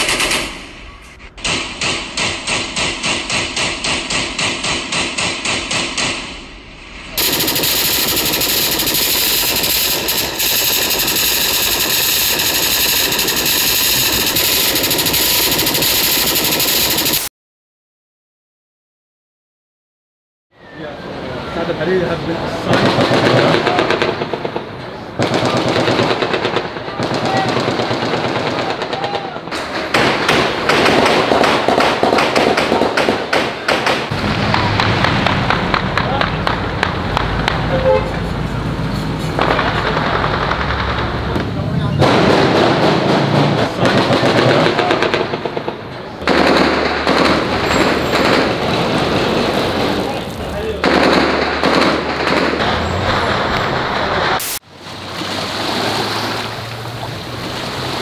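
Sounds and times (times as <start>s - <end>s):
automatic rifle fire: 0.0s - 0.8s, 1.4s - 6.4s, 7.2s - 17.3s, 22.7s - 34.2s, 42.0s - 49.0s, 50.8s - 52.7s
people's voices: 20.6s - 29.9s, 35.7s - 46.3s, 47.4s - 51.1s.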